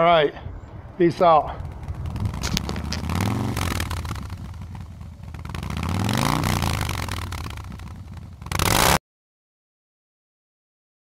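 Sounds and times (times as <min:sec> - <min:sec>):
motorcycle engine revving: 0:01.5 - 0:09.0
loud burst of noise: 0:01.6 - 0:09.0.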